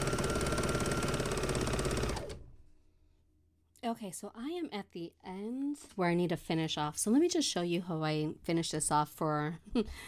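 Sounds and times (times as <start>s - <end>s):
overlock machine stitching: 0.0s - 2.6s.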